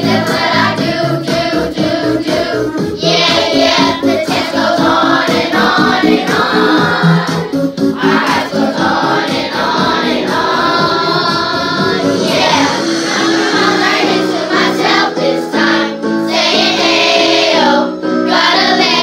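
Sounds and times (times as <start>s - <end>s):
backing music with steady beat: 0.0s - 19.0s
children singing: 0.0s - 19.0s.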